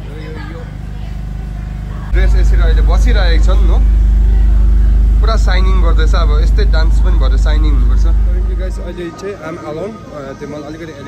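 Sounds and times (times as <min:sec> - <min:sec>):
vehicle engine rumbling: 0:00.0 - 0:09.1
voices: 0:00.0 - 0:09.4.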